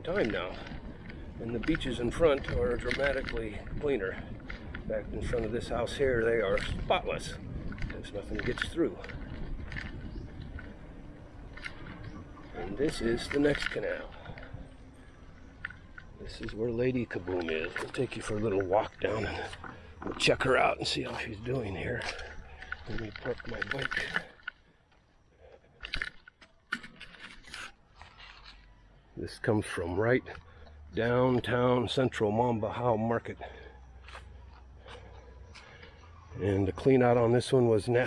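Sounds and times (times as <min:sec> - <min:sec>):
wind rumble on microphone: 0:00.0 - 0:24.3
bike tyres on concrete: 0:00.0 - 0:38.0
faint ticks: 0:07.7 - 0:20.4.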